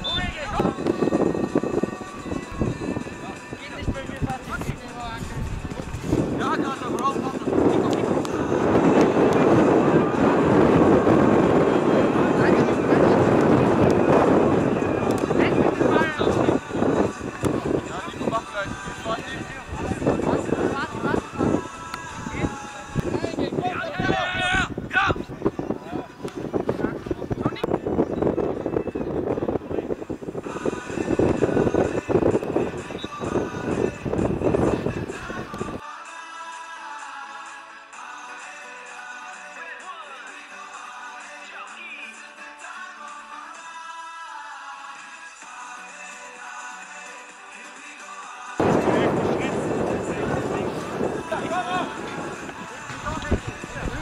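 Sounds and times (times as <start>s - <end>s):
wind buffeting microphone: 0.0s - 35.8s, 48.6s - 54.0s
loud rushing noise: 48.6s - 54.0s.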